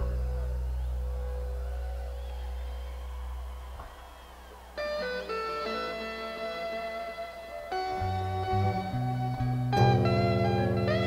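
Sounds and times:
deep sustained bass note: 0:00.0 - 0:03.3, 0:08.0 - 0:11.0.

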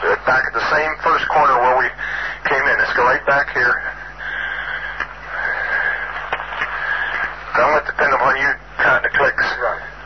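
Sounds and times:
cassette tape hiss: 0:00.0 - 0:10.0.

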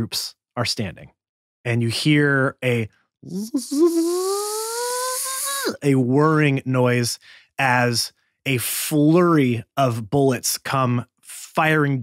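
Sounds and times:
person imitating gun whirr: 0:03.3 - 0:05.8.

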